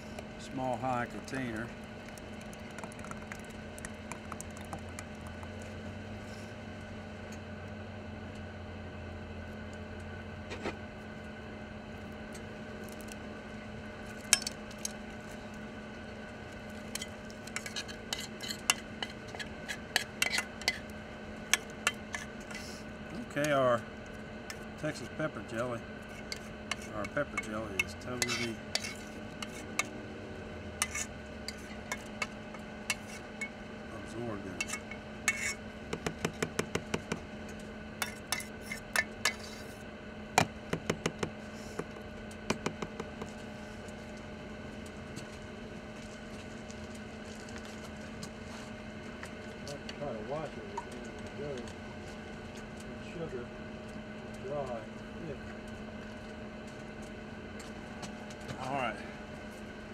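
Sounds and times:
steady low hum: 0.0s - 59.9s.

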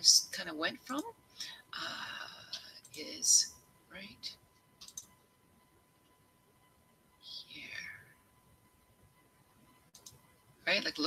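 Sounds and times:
faint steady tone: 0.0s - 11.0s
computer mouse clicks: 4.8s - 5.2s, 9.9s - 10.3s.

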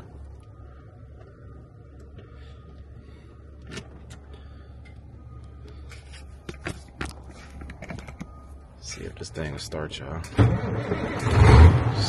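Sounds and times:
steady low rumble: 0.0s - 12.0s.

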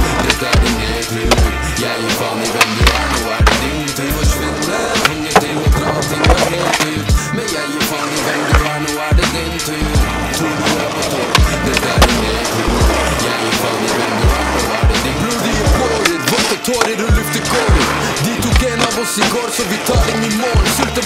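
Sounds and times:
hip-hop beat with deep bass: 0.0s - 21.0s
skateboard clacks: 0.0s - 21.0s
skateboard wheels rolling: 0.0s - 21.0s.

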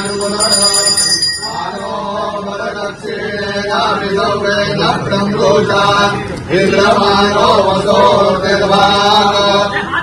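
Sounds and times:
men chanting: 0.0s - 10.0s.

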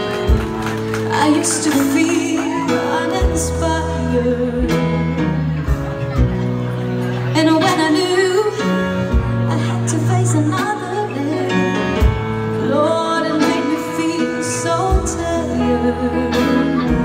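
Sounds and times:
band with bass and drums: 0.0s - 17.0s
woman singing a soul ballad: 1.0s - 5.3s, 7.3s - 17.0s.

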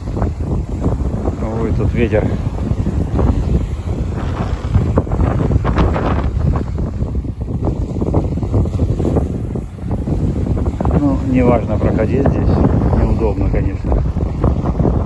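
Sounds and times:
gusting wind on microphone: 0.0s - 15.0s
surf washing over rocks: 0.0s - 15.0s.

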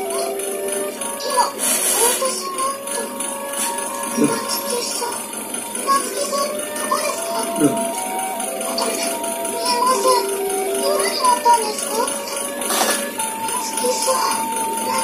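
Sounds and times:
background music of held notes: 0.0s - 15.0s
girl speaking: 1.2s - 3.2s, 4.1s - 5.2s, 5.8s - 7.9s, 8.7s - 12.6s, 13.5s - 15.0s.

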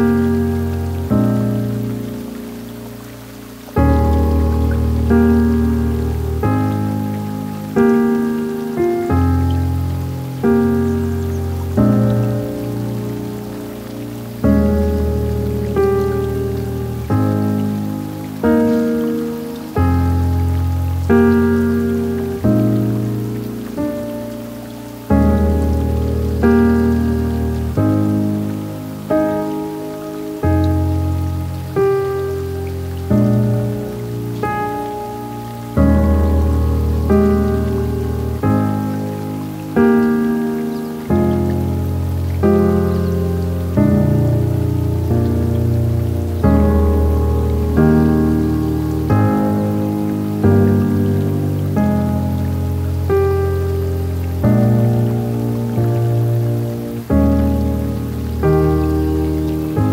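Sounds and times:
faint steady hiss: 0.0s - 59.9s
slow soft piano chords: 0.0s - 59.9s.

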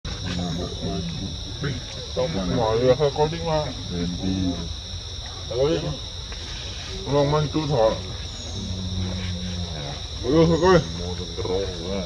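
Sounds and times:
man talking in a low voice: 0.1s - 4.7s, 7.1s - 12.0s
high-pitched insect drone: 0.1s - 12.0s.

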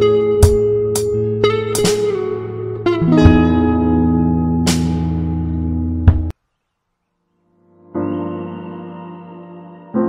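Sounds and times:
plucked guitar notes: 0.0s - 6.3s.

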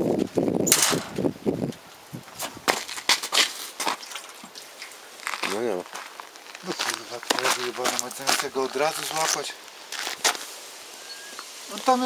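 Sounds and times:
shoes crunching on gritty road: 2.3s - 10.6s.

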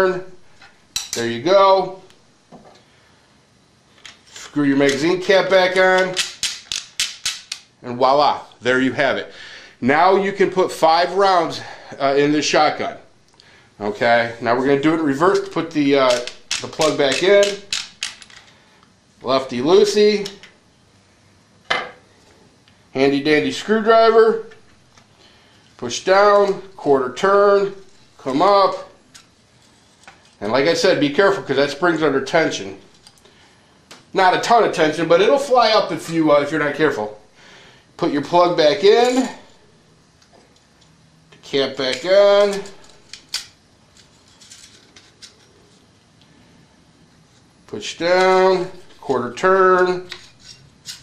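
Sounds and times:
metal parts clicking: 6.0s - 7.7s, 16.0s - 18.5s, 41.9s - 45.5s.

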